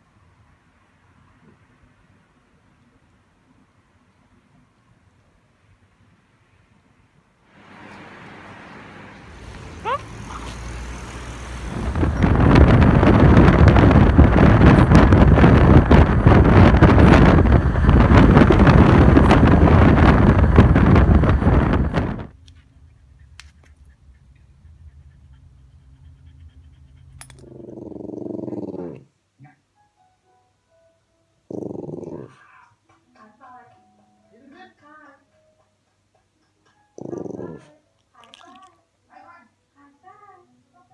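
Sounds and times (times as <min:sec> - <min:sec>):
car road noise: 0:07.5 - 0:22.9
wind rushing over microphone: 0:09.2 - 0:22.4.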